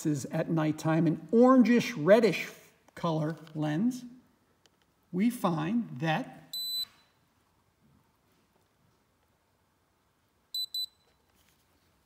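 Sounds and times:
high-pitched device beeps: 0:06.5 - 0:07.1, 0:10.6 - 0:11.0.

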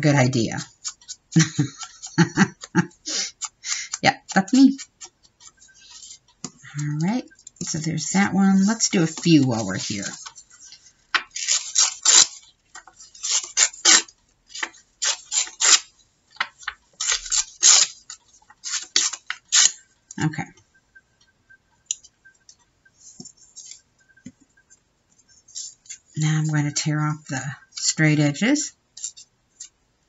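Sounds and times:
faint paper rustles: 0:00.6 - 0:13.8, 0:23.0 - 0:26.5
paper ripping by hand: 0:11.3 - 0:12.4, 0:13.2 - 0:15.9, 0:17.0 - 0:18.0, 0:18.6 - 0:19.8.

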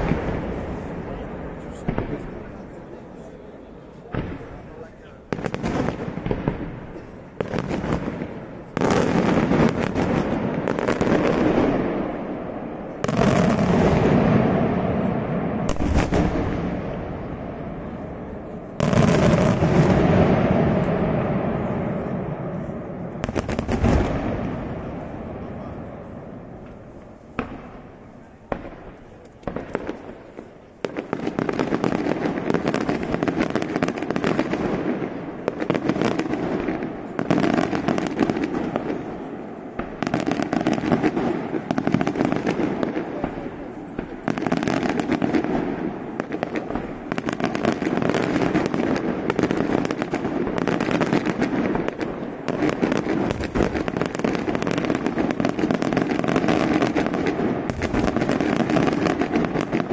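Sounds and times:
fireworks bangs and crackling: 0:00.0 - 0:59.9.

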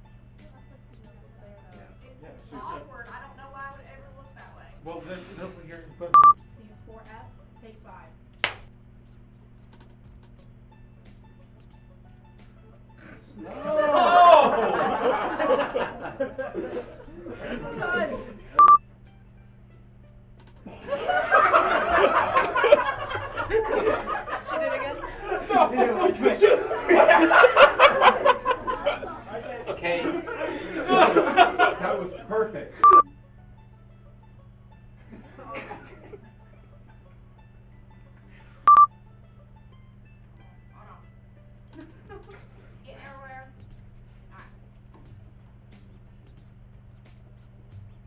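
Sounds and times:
faint low hum: 0:00.0 - 0:48.0
short electronic beep: 0:18.6 - 0:18.8, 0:32.8 - 0:33.1, 0:38.7 - 0:38.9.

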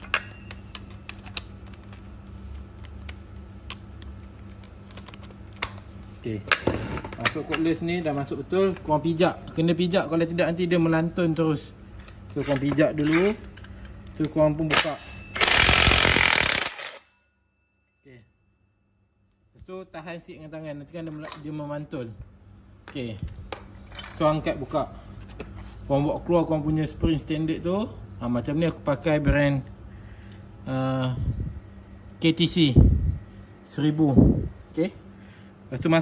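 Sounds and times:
steady low hum: 0:00.0 - 0:36.0
impact wrench hammering: 0:14.7 - 0:17.1.

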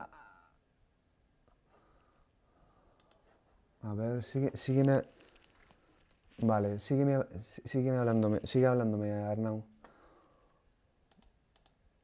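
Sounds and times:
faint short clicks: 0:03.0 - 0:03.2, 0:11.1 - 0:11.8
man speaking: 0:03.8 - 0:05.1, 0:06.3 - 0:09.7.

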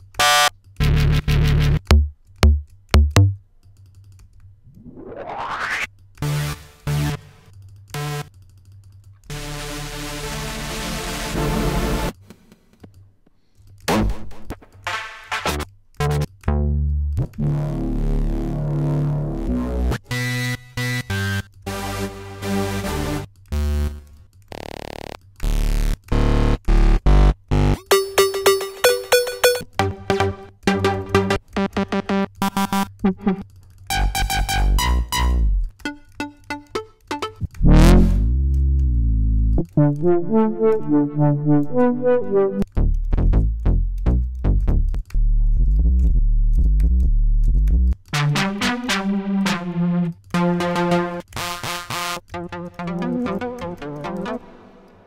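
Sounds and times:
synthesizer bass note bending: 0:00.8 - 0:03.4, 0:16.1 - 0:20.0, 0:30.8 - 0:33.4, 0:34.0 - 0:50.9
synthesizer chords: 0:00.8 - 0:03.4, 0:27.1 - 0:42.8, 0:48.2 - 0:55.0
noise swoosh: 0:04.7 - 0:05.9
synthesizer short notes: 0:34.1 - 0:38.9, 0:39.5 - 0:42.7, 0:52.4 - 0:54.6
deep bass hits: 0:37.4 - 0:42.0.

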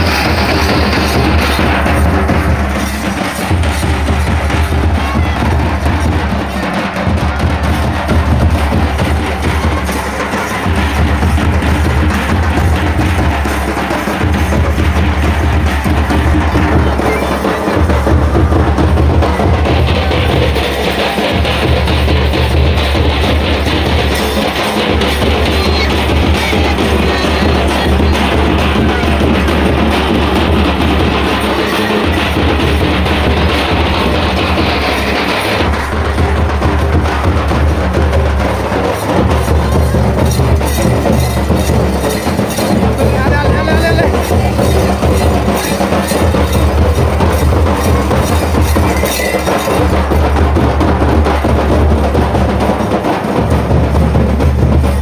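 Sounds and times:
drum beaten in steady rhythm: 0:00.0 - 0:55.0
voices: 0:00.0 - 0:55.0.

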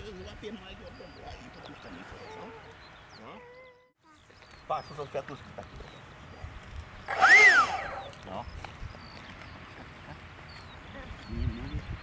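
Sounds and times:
electric fan whine: 0:07.0 - 0:08.2.

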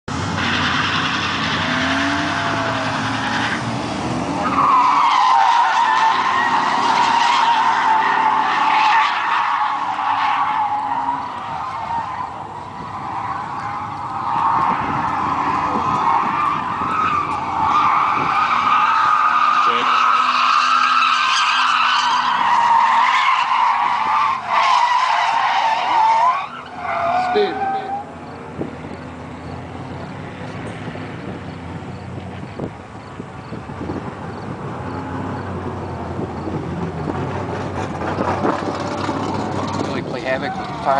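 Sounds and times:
car tyres squealing: 0:00.1 - 0:40.9
engines revving: 0:00.1 - 0:40.9.

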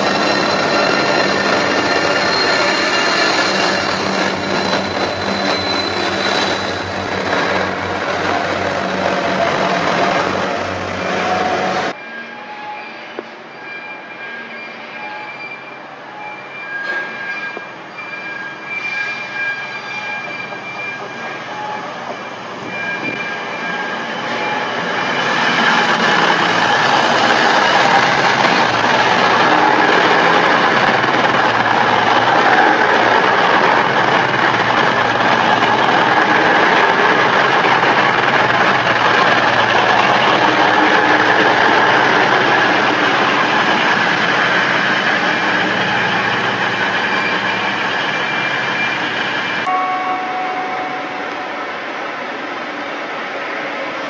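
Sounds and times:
diesel train passing: 0:00.0 - 0:12.0, 0:21.2 - 0:54.0.

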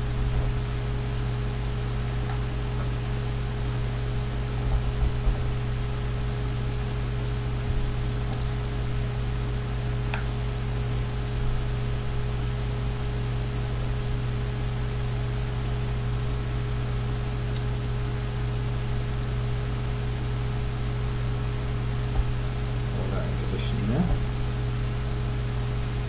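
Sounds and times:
electrical hiss and mains hum: 0:00.0 - 0:26.0.

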